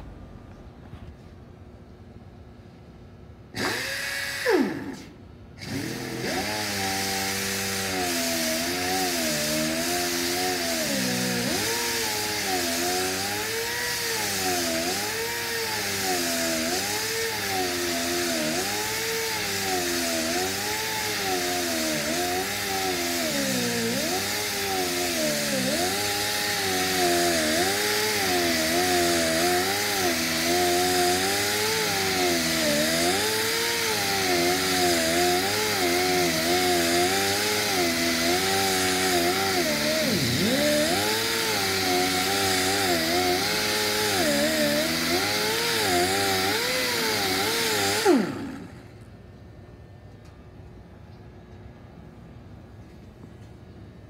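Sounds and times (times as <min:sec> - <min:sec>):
pneumatic grinder on sheet metal: 0:03.6 - 0:49.1.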